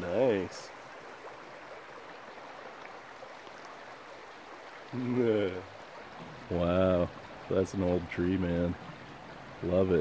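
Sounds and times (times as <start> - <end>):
brook running: 0.0 - 10.0.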